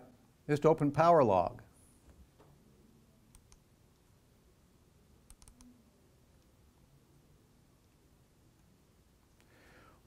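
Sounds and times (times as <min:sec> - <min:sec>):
faint computer mouse clicks: 0:03.3 - 0:03.6, 0:05.3 - 0:05.7.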